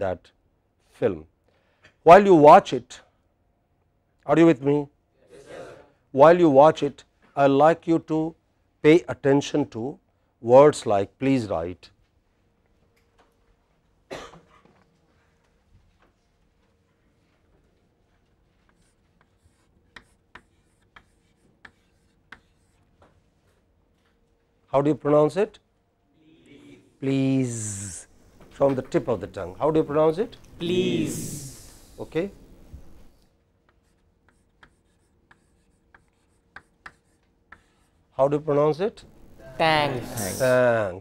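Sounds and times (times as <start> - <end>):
chalk scratching on chalkboard: 18.4 - 23.5, 33.7 - 38.0
chalk clicking against board: 18.6 - 23.2, 33.6 - 37.8.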